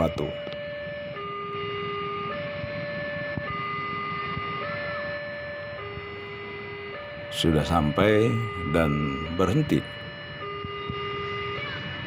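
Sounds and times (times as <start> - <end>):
two-tone level-crossing siren: 0.0 - 12.0.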